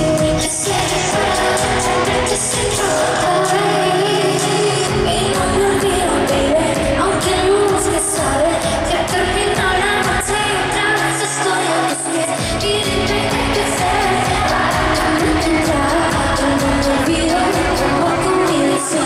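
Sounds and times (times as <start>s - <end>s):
pop music beat: 0.0s - 19.0s
woman singing into microphone: 0.0s - 19.0s.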